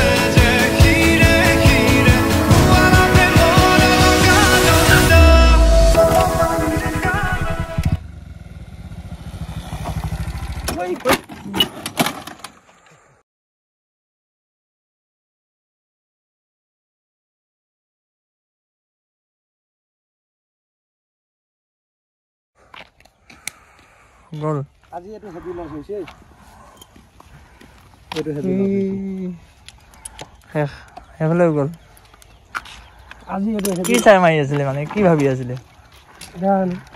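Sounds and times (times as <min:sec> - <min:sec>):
motorcycle engine running: 0:05.6 - 0:11.0
footsteps on gritty asphalt: 0:22.6 - 0:31.1, 0:31.8 - 0:36.9.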